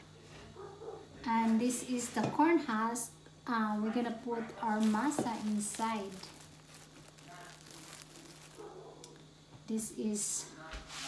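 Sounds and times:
plastic bag crinkling: 0:03.6 - 0:09.2.

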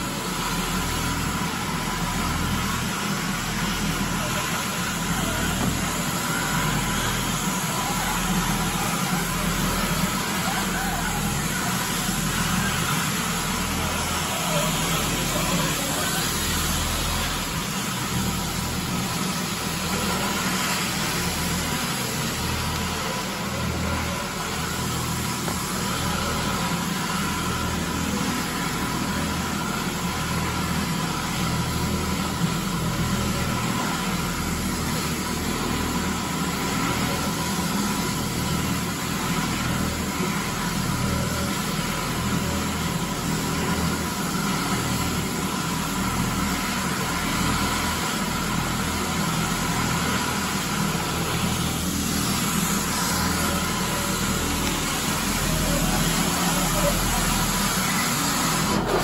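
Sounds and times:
floor scrubber motors running: 0:00.0 - 0:59.0.

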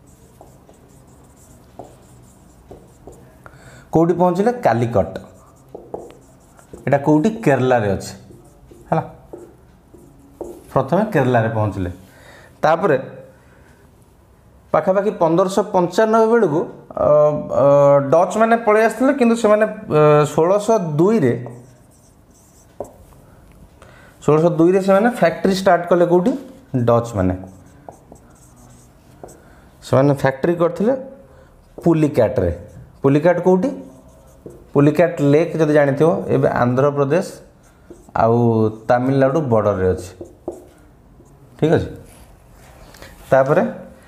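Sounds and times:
marker pen scratching on whiteboard: 0:00.0 - 0:03.4, 0:04.2 - 0:11.4, 0:20.9 - 0:23.2, 0:24.4 - 0:29.6, 0:31.7 - 0:36.4, 0:37.2 - 0:42.4
marker tap on whiteboard: 0:00.3 - 0:01.0, 0:01.7 - 0:03.3, 0:05.7 - 0:06.9, 0:08.3 - 0:10.7, 0:22.7 - 0:23.0, 0:27.8 - 0:28.3, 0:29.2 - 0:29.4, 0:31.7 - 0:32.1, 0:33.7 - 0:34.7, 0:37.8 - 0:38.1, 0:40.0 - 0:40.8.

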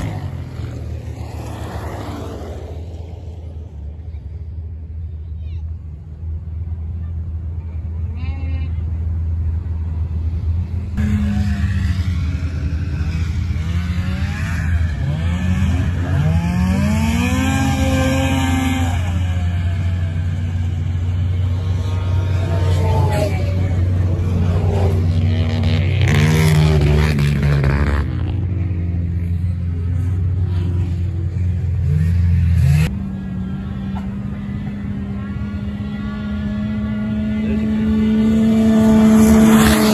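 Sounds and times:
steady low engine rumble: 0:00.0 - 0:39.9
engine revving: 0:10.9 - 0:39.9.

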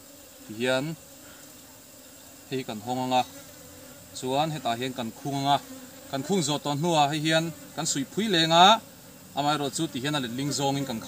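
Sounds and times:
honey bees buzzing: 0:00.0 - 0:11.0.

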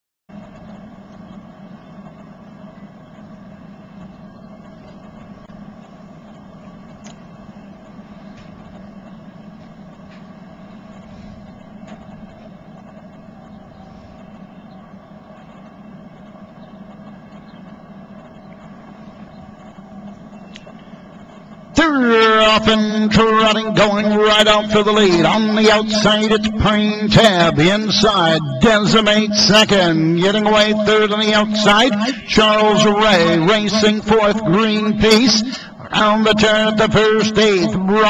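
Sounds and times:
constant low hum: 0:00.3 - 0:38.0.

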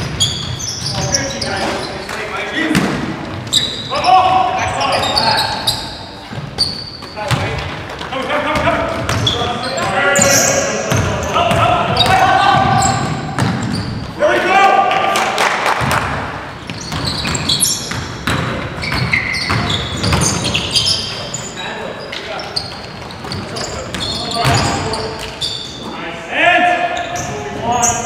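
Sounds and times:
sneakers squeaking: 0:00.0 - 0:14.2, 0:15.8 - 0:26.0, 0:26.8 - 0:28.0
basketball bouncing on hardwood: 0:07.3 - 0:09.4, 0:10.9 - 0:13.8, 0:15.8 - 0:20.6
players shouting: 0:08.3 - 0:13.2, 0:14.1 - 0:15.3.

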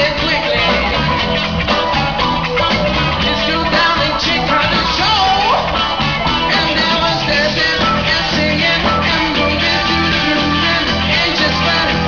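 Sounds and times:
man singing lead: 0:00.0 - 0:02.0, 0:03.2 - 0:12.0
drum kit: 0:00.0 - 0:12.0
electric bass: 0:00.0 - 0:12.0
electric guitar: 0:00.0 - 0:12.0.

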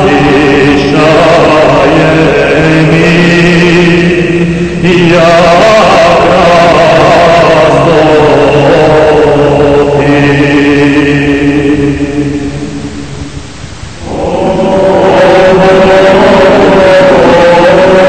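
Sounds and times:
choral church chant: 0:00.0 - 0:13.3, 0:14.0 - 0:18.0.

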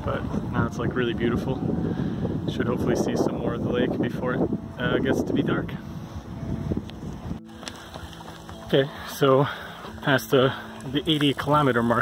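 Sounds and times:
wind buffeting microphone: 0:00.0 - 0:08.7
steady outdoor background: 0:00.0 - 0:12.0.

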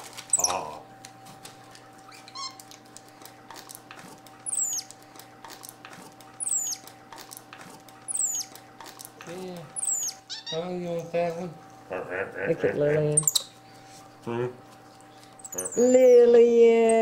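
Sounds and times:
paper rustling: 0:00.0 - 0:00.4
steady low hum: 0:00.0 - 0:17.0
monkey high calls: 0:00.3 - 0:00.7, 0:04.4 - 0:04.9, 0:06.4 - 0:06.9, 0:08.1 - 0:08.6, 0:09.7 - 0:10.7, 0:13.2 - 0:13.5, 0:15.4 - 0:16.2.

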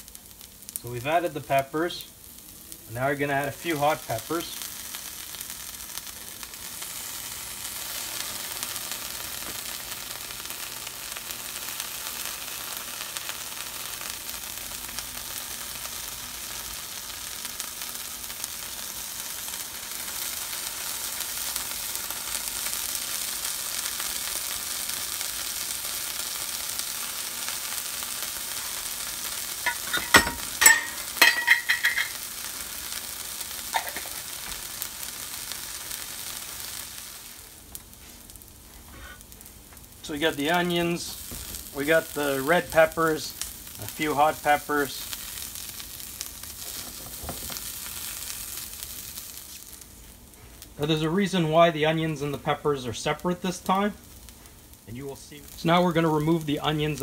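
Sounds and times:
sharp crackles and clicks: 0:00.0 - 0:57.0
vegetables sizzling in butter: 0:00.0 - 0:57.0.

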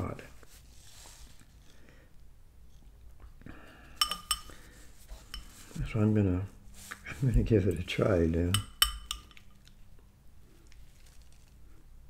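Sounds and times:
metal spoon clinking ceramic bowl: 0:04.0 - 0:04.6, 0:08.5 - 0:09.4.

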